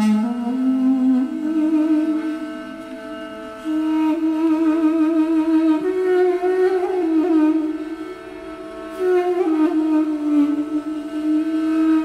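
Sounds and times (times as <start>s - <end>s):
duduk: 0.0s - 12.0s
kamancheh: 0.0s - 12.0s.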